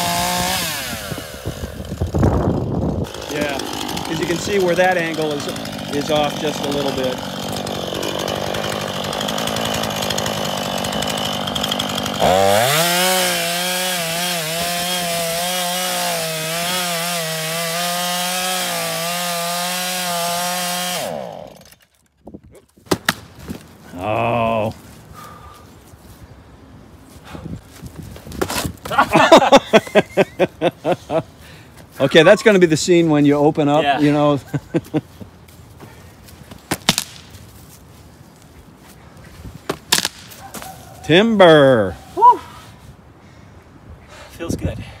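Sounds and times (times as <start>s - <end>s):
chainsaw cutting wood: 0.0s - 22.1s, 36.6s - 37.3s.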